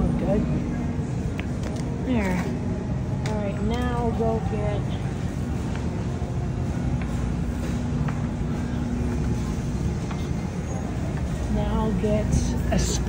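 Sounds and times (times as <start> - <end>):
steady hum: 0.0 - 13.0
shopping cart rolling: 3.6 - 13.0.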